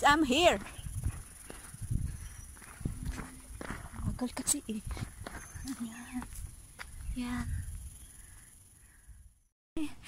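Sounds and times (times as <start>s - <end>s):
footsteps on concrete: 0.2s - 7.5s.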